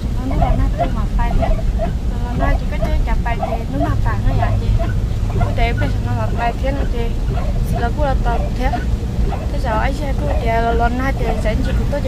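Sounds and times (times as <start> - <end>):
car driving rumble: 0.0 - 12.0
people talking: 0.0 - 12.0.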